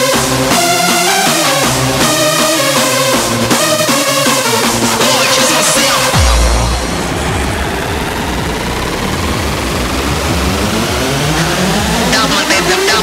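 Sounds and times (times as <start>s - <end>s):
rave music: 0.0s - 13.0s
rising synth tones: 4.8s - 13.0s
deep bass hit: 4.9s - 11.9s.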